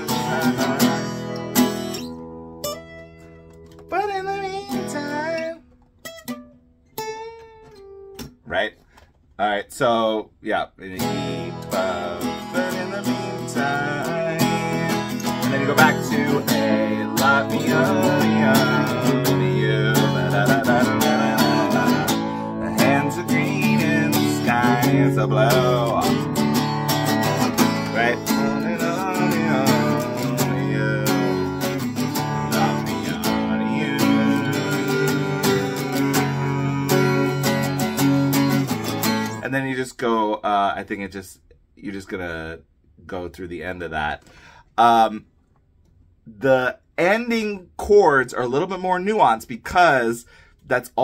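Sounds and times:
acoustic guitar strumming: 0.0 - 8.5, 11.0 - 39.6.

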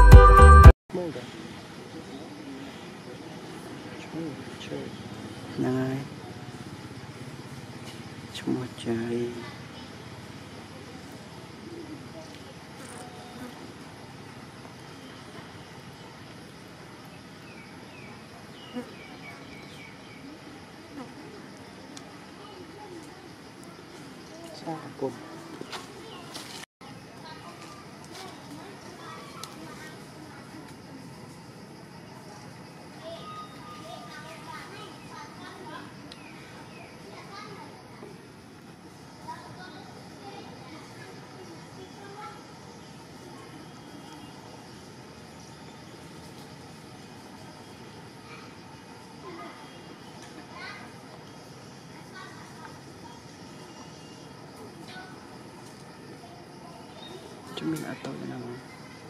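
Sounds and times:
falling chirps: 0.0 - 0.7
insects buzzing: 1.0 - 59.0.

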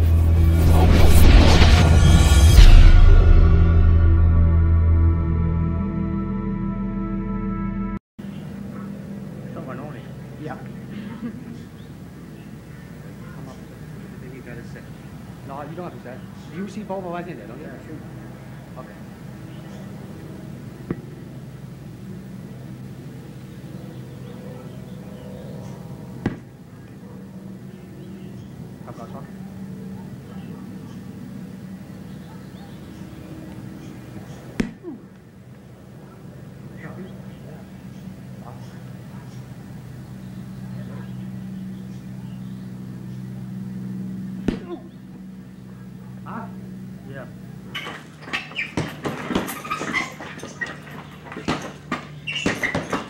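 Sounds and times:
low hum and hiss: 8.2 - 53.0
strike smacking padded shield: 26.2 - 26.5, 34.6 - 35.0, 44.4 - 44.8.

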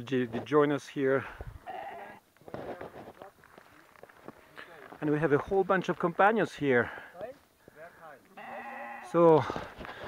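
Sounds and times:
sheep bleating: 1.6 - 2.2, 8.3 - 9.2.

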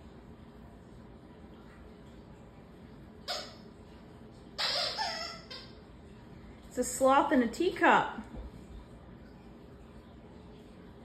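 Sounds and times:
squeaky dog toy squeaking: 3.3 - 3.6, 4.6 - 5.8.

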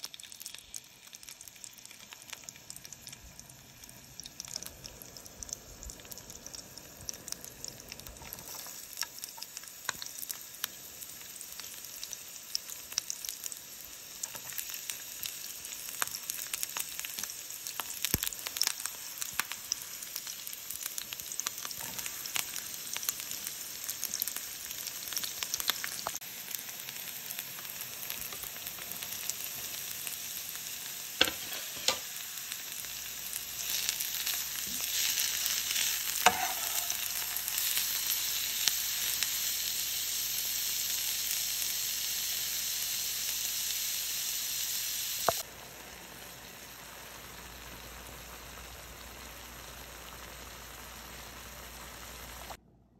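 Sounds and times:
onions sizzling in hot oil: 0.0 - 52.6.

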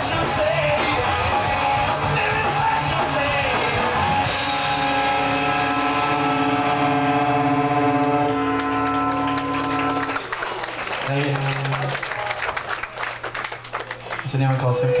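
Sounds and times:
electric guitars ringing chord: 0.0 - 10.3
low guitar note: 4.4 - 10.0
crowd clapping and cheering: 6.6 - 15.0.

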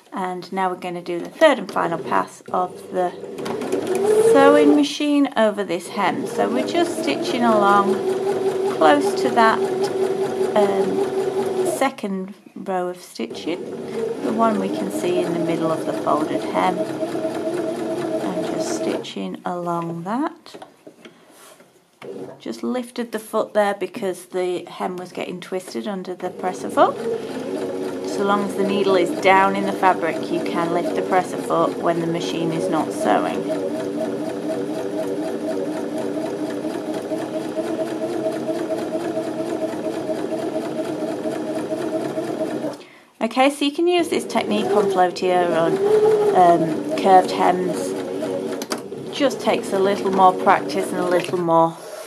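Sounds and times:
sewing machine humming: 1.8 - 4.8, 6.0 - 11.8, 13.4 - 19.0, 26.2 - 42.8, 44.0 - 52.0.

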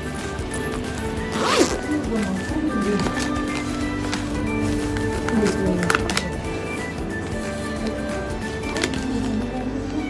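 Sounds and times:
background music: 0.0 - 10.0
zipper pulled: 1.2 - 2.3.

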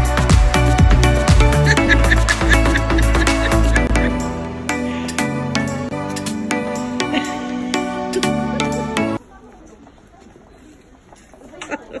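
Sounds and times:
backing music: 0.0 - 9.2.

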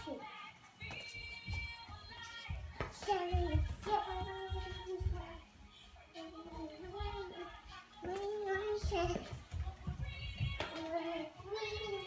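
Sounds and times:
child-like voice singing: 0.0 - 12.0
feet stamping on tile floor: 0.0 - 12.0.

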